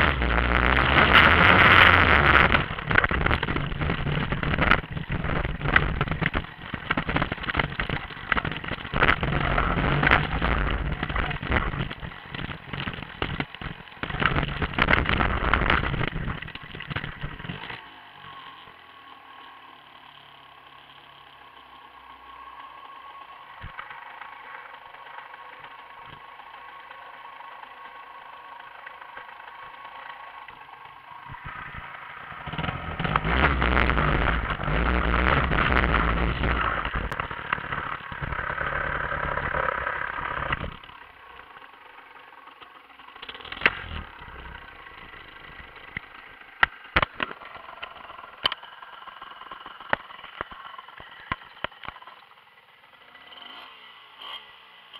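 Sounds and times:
moped engine revving: 0:00.0 - 0:54.9.

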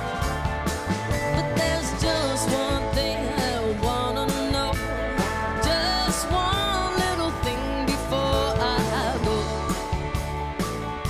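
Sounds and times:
drums: 0:00.0 - 0:11.0
electric guitars: 0:00.0 - 0:11.0
live band playing: 0:00.0 - 0:11.0.

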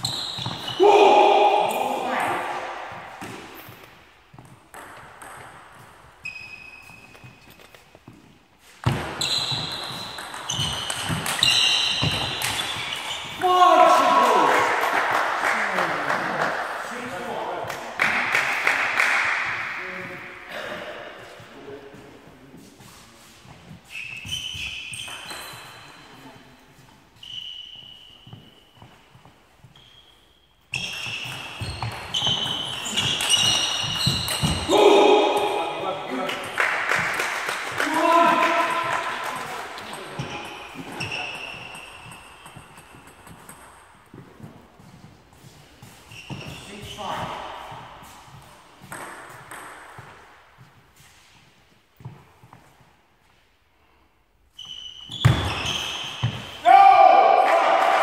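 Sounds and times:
table tennis ball bouncing: 0:04.4 - 0:06.0, 0:08.9 - 0:13.4, 0:30.8 - 0:34.7, 0:38.5 - 0:44.5, 0:48.8 - 0:50.2.

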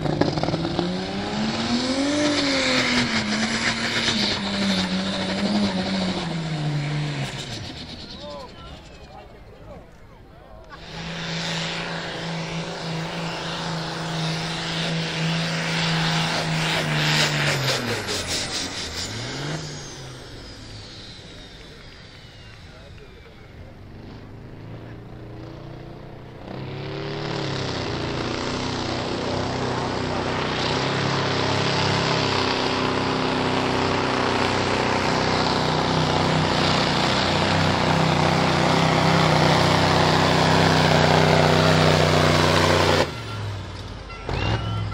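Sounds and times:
diesel truck engine pulling: 0:00.0 - 0:44.9
tractor engine under load: 0:00.0 - 0:44.9.

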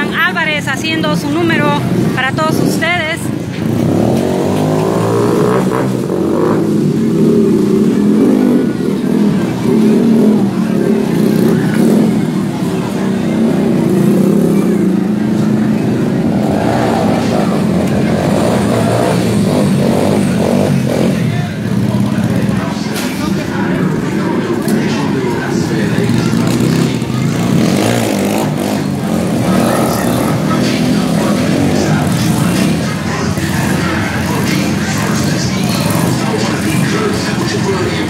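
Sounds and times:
crowd voices: 0:00.0 - 0:38.0
motorcycle engine revving: 0:00.0 - 0:38.0.

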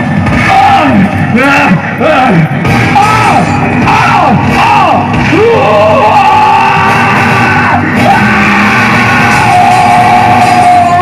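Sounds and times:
music: 0:00.0 - 0:11.0
people shouting and yelling: 0:00.0 - 0:11.0.

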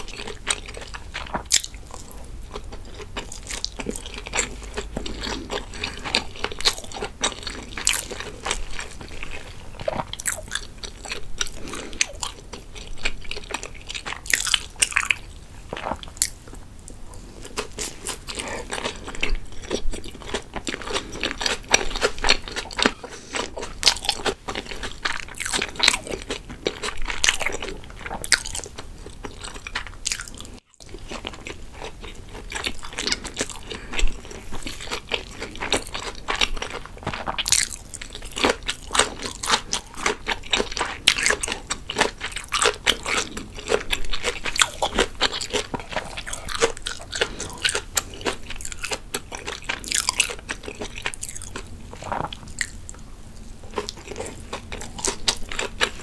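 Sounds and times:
close chewing mouth sounds: 0:00.0 - 0:56.0.

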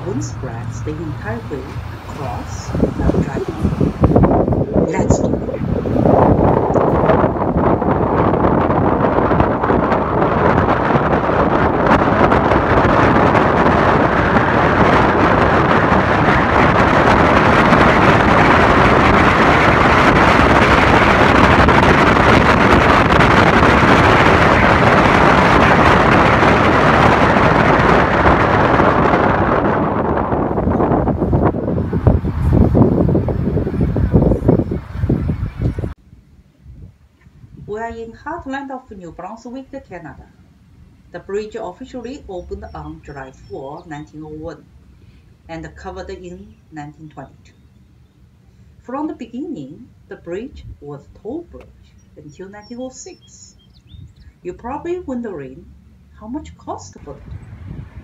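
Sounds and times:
car road and wind noise: 0:00.0 - 0:38.4, 0:50.3 - 0:58.0.

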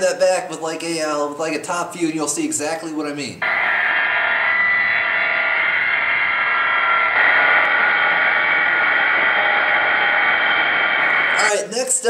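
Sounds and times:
angle grinder grinding steel: 0:03.4 - 0:11.5.

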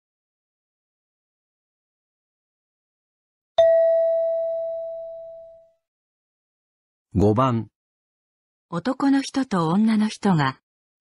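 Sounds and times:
chime note ringing: 0:03.6 - 0:05.6.

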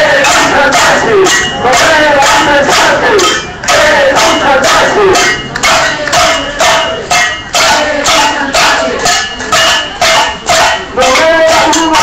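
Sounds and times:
crowd shouting a chant: 0:00.0 - 0:12.0
rhythmic percussion beats: 0:00.0 - 0:12.0.

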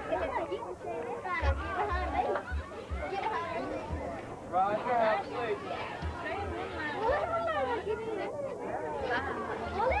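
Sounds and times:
children and adults chattering: 0:00.0 - 0:10.0.

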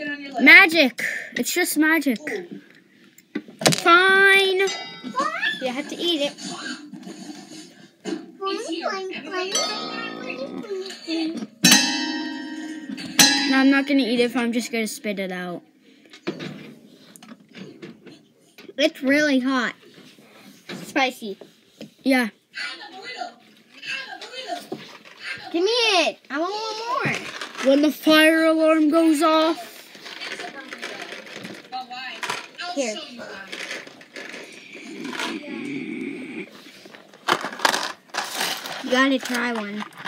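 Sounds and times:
child vocal sounds: 0:08.5 - 0:11.4, 0:34.8 - 0:36.5
rustling: 0:36.6 - 0:40.0.

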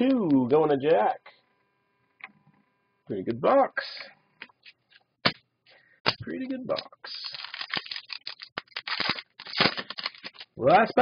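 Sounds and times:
wrapper crinkling and tearing: 0:06.7 - 0:10.7.

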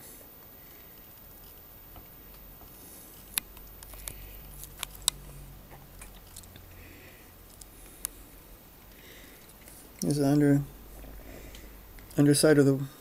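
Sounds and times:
sharp plastic clicks: 0:03.3 - 0:05.2.

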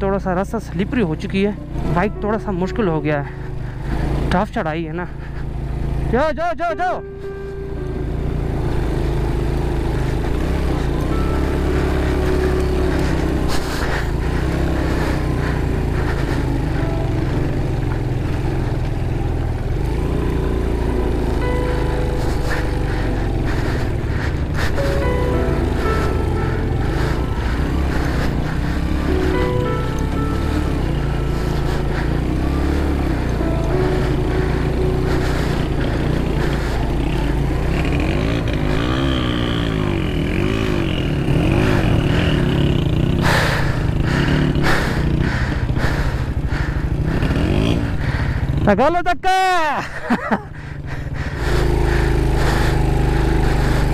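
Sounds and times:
background music: 0:00.0 - 0:45.2
motorcycle engine pulling uphill: 0:00.0 - 0:53.9.

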